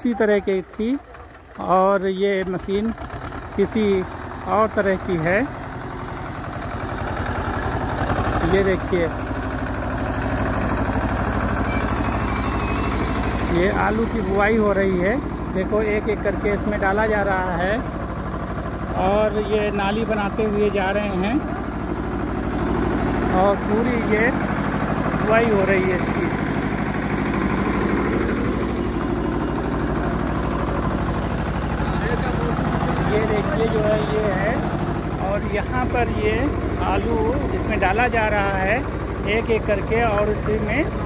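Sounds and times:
tractor diesel engine running: 0.0s - 41.0s.

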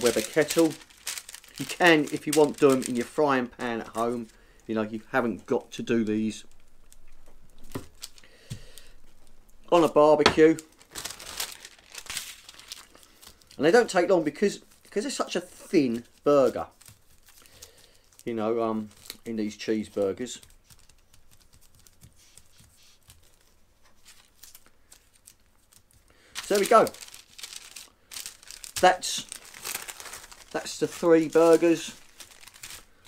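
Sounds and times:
faint paper rustling: 0.0s - 33.0s.

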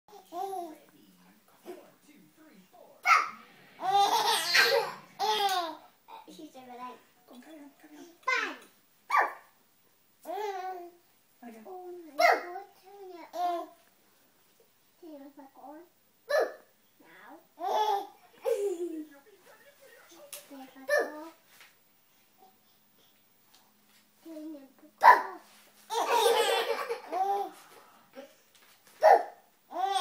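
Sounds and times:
baby laughing: 3.0s - 5.8s, 25.9s - 27.6s.

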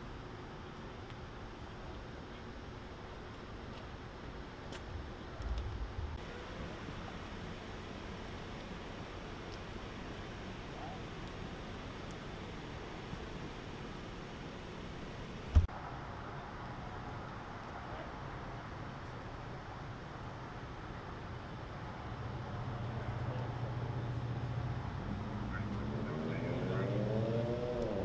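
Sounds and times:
steady low hum: 0.0s - 26.9s
steady background noise: 0.0s - 28.0s.

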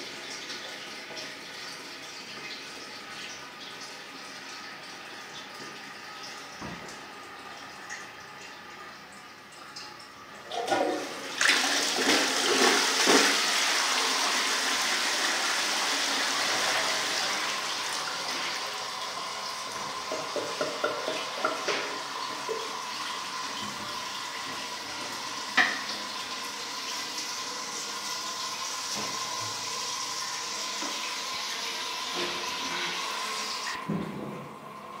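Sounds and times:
toilet flushing: 0.0s - 35.0s.

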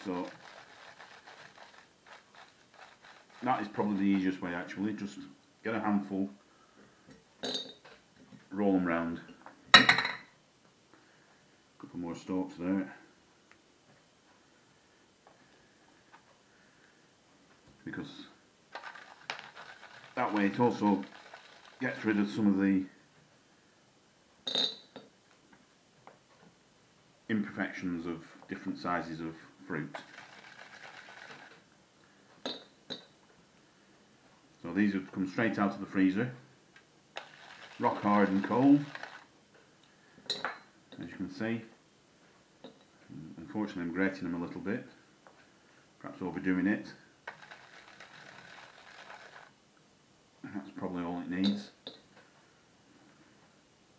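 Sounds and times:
grater rasping over frozen fruit: 0.0s - 3.5s, 18.8s - 21.9s.

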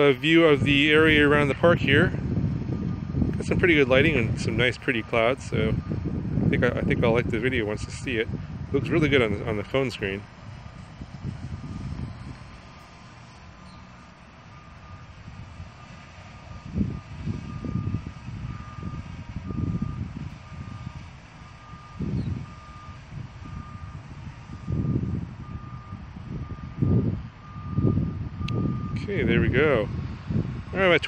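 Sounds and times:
low rumbles: 0.0s - 31.0s.

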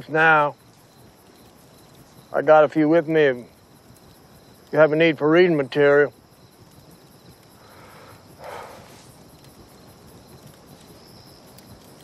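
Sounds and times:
crickets chirping: 0.0s - 12.0s
soft breathy rustle: 7.5s - 9.7s.

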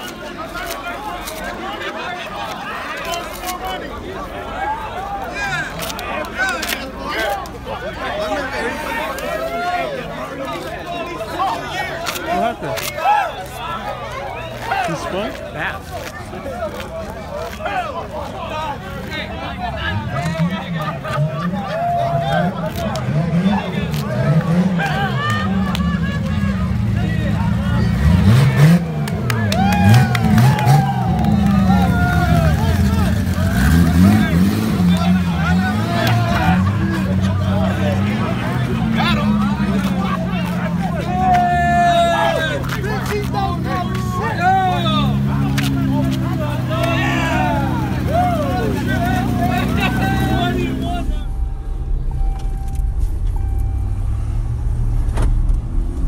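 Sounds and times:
car engine idling: 29.1s - 56.0s
people shouting: 29.4s - 51.4s
low rumble: 49.0s - 56.0s.

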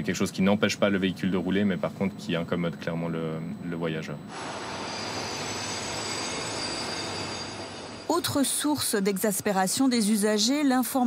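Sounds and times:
high wheel squeal: 4.3s - 8.7s
train rolling past: 4.3s - 9.0s.

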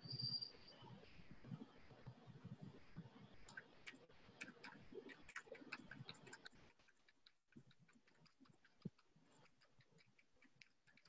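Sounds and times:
small clicks: 3.0s - 11.0s.

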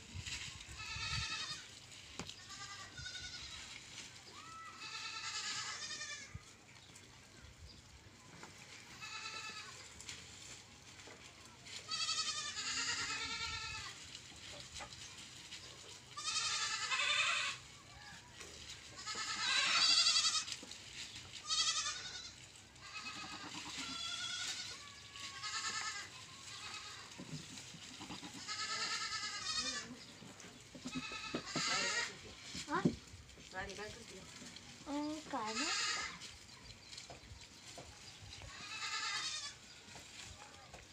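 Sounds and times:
goats bleating: 0.6s - 6.5s, 8.8s - 10.0s, 11.8s - 14.1s, 16.1s - 18.2s, 18.8s - 20.7s, 21.4s - 30.2s, 30.8s - 32.5s, 35.0s - 36.3s, 38.4s - 40.3s.

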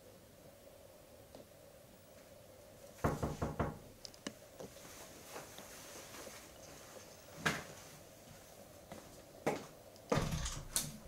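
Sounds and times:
knocking on a door: 3.0s - 3.9s.

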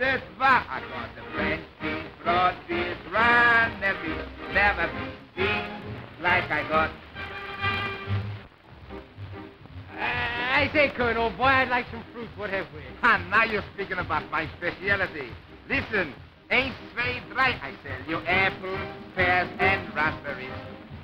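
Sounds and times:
man singing patter song: 0.0s - 8.2s, 9.8s - 21.0s
dance band accompaniment: 0.0s - 21.0s.

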